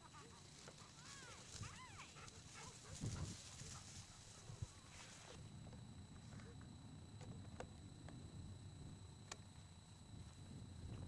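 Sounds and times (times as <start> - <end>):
dog high calls: 0.0 - 3.7.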